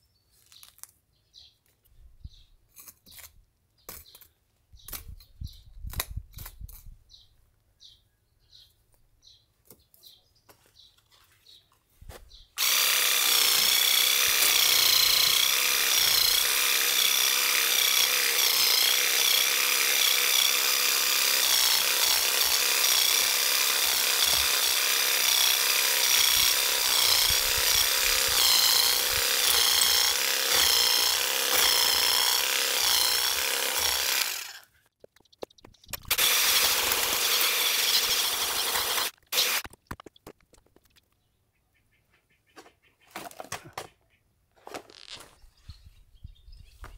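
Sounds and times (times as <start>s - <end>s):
electric weeding vibrator buzzing: 12.6s - 34.7s, 36.0s - 39.7s.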